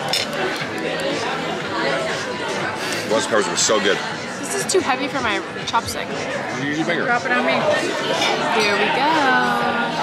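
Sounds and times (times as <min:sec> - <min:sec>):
tableware clicks: 0:00.0 - 0:01.2
diners chatting: 0:00.0 - 0:10.0.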